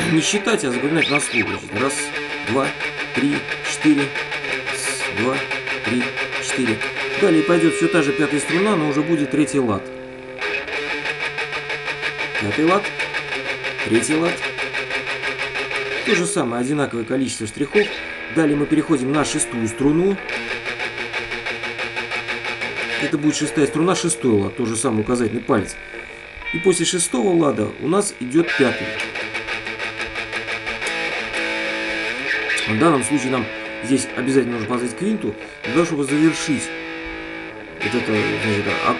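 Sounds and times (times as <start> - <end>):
electric guitar fast picking: 0.0 - 38.9.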